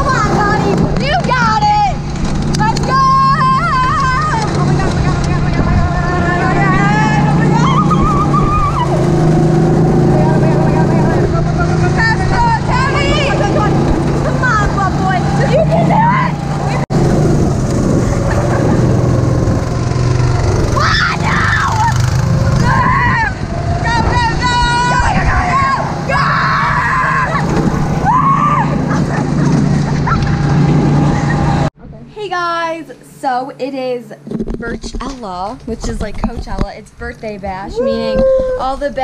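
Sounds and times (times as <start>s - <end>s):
go-kart engine running: 0.0s - 31.8s
girls shouting and laughing: 2.6s - 9.4s, 10.4s - 16.9s, 20.6s - 30.5s, 37.6s - 39.0s.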